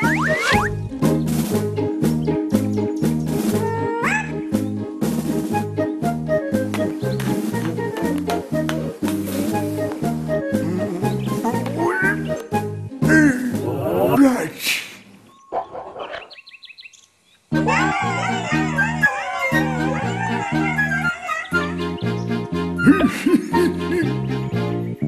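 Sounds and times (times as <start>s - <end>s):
bouncy cartoon music: 0.0s - 14.4s, 17.5s - 25.0s.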